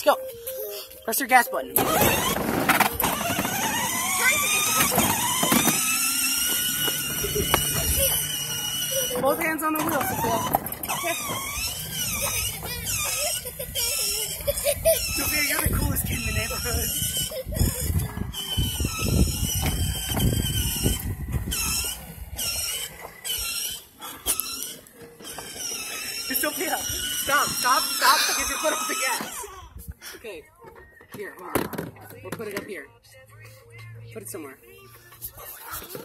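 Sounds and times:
pop song from small speaker: 0:27.6 - 0:36.0.

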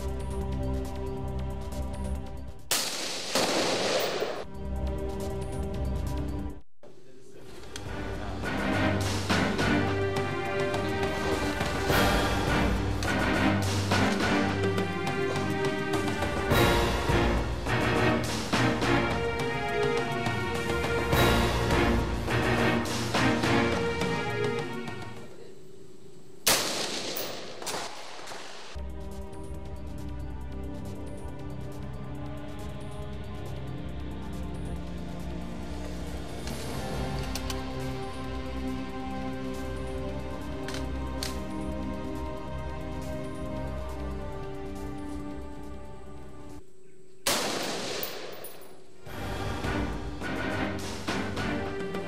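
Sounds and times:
gunshot with ringing tail: 0:02.7 - 0:04.4, 0:26.5 - 0:28.7, 0:47.3 - 0:48.8.

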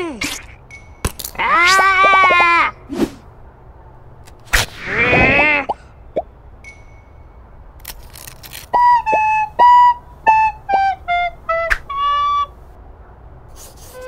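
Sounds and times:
person shouting: 0:01.4 - 0:02.7.

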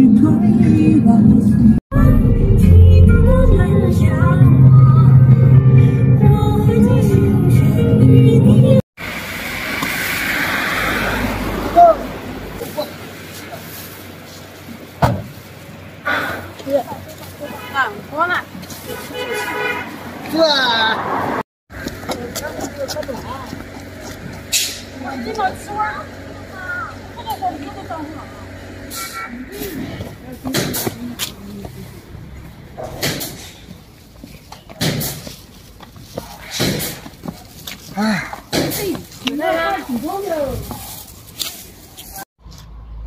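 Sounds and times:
vehicle running: 0:00.0 - 0:18.9, 0:20.0 - 0:41.5
street noise: 0:00.0 - 0:43.0
loud rising sound: 0:09.0 - 0:12.6
large vehicle engine running: 0:21.7 - 0:33.9.

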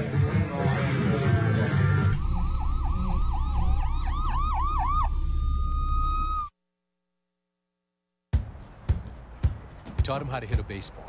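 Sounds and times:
music: 0:00.0 - 0:02.6, 0:08.4 - 0:10.9
siren yelping: 0:01.8 - 0:06.5
low rumble: 0:02.1 - 0:06.5.

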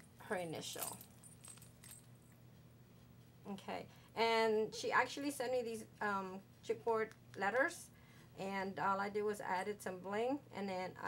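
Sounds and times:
small metal charms clinking: 0:00.6 - 0:02.2.

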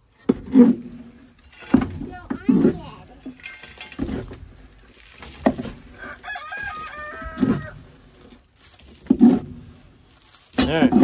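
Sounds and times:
metal shovel knocking and scraping: 0:00.1 - 0:04.6, 0:09.0 - 0:09.6, 0:10.5 - 0:11.0
chicken calling: 0:06.0 - 0:07.8.

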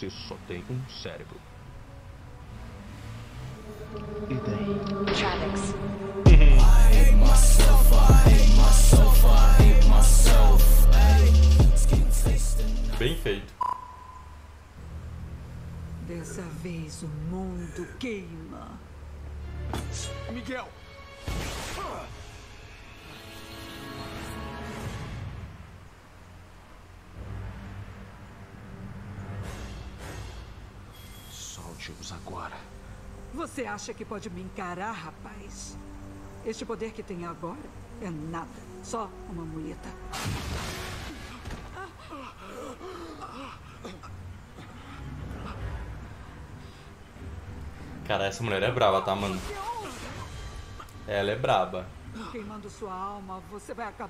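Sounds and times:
quiet low drone: 0:01.6 - 0:20.1
high beep tone: 0:13.6 - 0:14.4
man gasping and groaning: 0:42.0 - 0:45.6.

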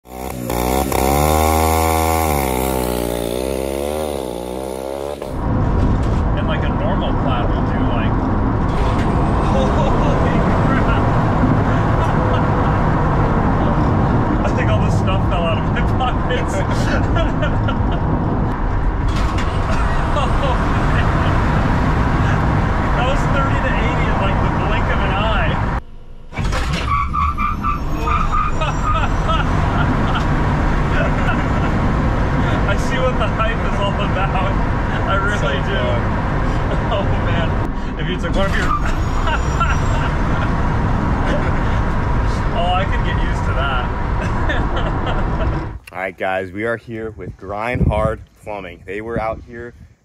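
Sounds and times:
race car engine and road noise: 0:00.0 - 0:46.0.

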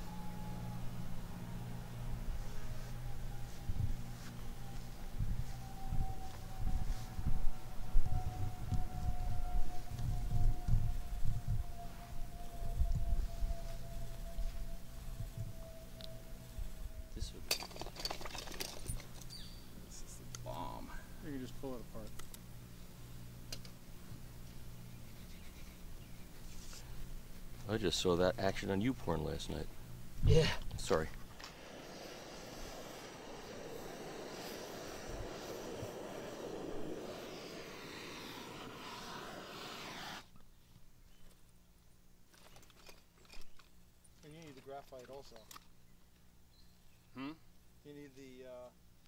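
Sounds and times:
low steady hum: 0:00.0 - 0:49.0
gas torch hissing: 0:30.3 - 0:40.3.

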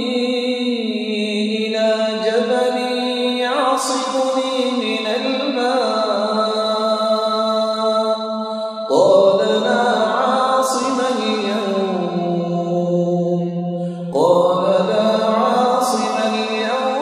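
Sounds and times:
man chanting melodically: 0:00.0 - 0:17.0.

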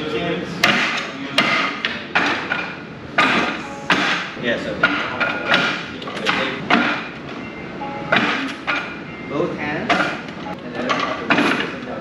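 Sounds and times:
sharp wooden knocks: 0:00.6 - 0:07.2, 0:08.1 - 0:08.9, 0:09.9 - 0:11.8.

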